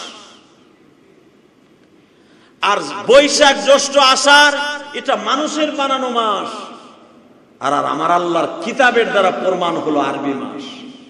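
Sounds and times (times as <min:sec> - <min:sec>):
man's amplified voice echoing: 0:00.0 - 0:00.7, 0:02.6 - 0:11.0
faint background hiss: 0:00.0 - 0:11.0.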